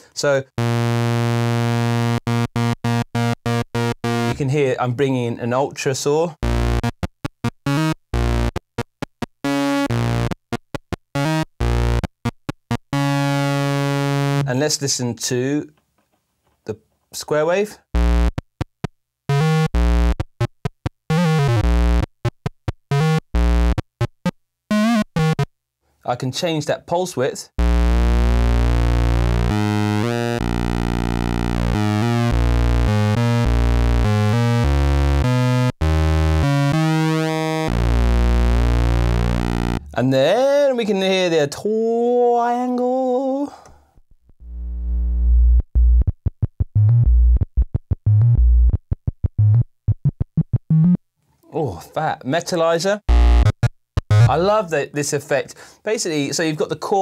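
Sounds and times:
analog synthesizer notes: 0.6 - 4.4, 6.4 - 14.5, 17.9 - 18.5, 19.3 - 20.5, 21.1 - 25.5, 27.6 - 40.2, 44.4 - 51.0, 53.1 - 54.6.

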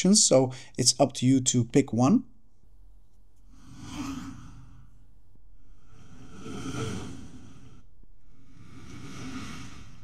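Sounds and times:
airy whoosh: 8.4 - 10.0.

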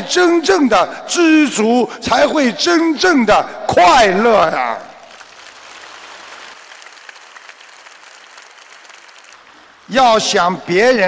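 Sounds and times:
audience applauding: 5.1 - 9.9.

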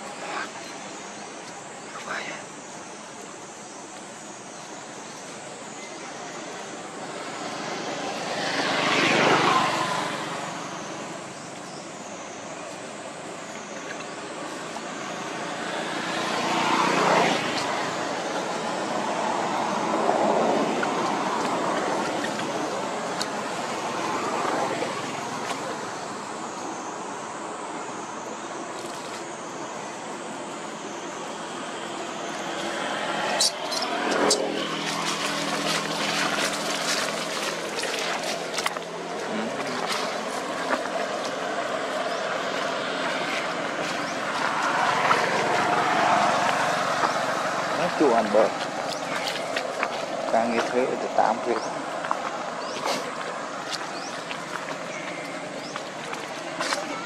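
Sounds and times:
passing motor traffic: 0.0 - 57.0.

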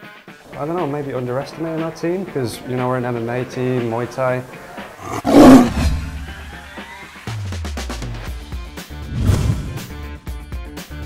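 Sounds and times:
background music: 0.0 - 11.0
tiger roar: 5.0 - 6.6.

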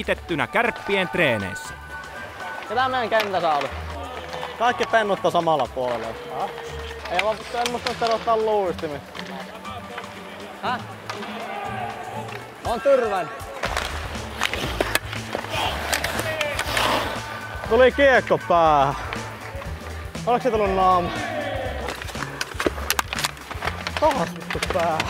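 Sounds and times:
background music: 0.0 - 25.0
hockey sticks and pucks clacking on ice: 2.1 - 25.0.

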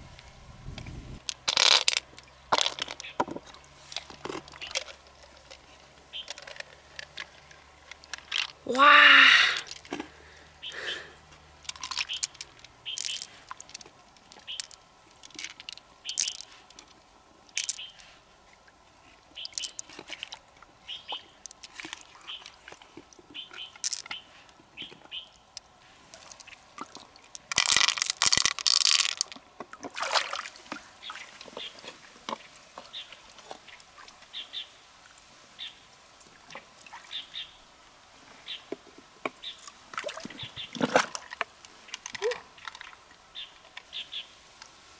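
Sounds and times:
shells clicking and scraping: 1.2 - 3.1, 3.9 - 8.6, 11.6 - 18.0, 23.5 - 24.2, 27.3 - 29.4
water rushing: 25.4 - 38.3.

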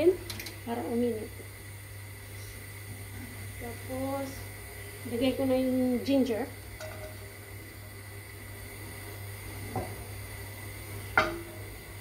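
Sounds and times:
oil hissing in a pan: 0.0 - 12.0.

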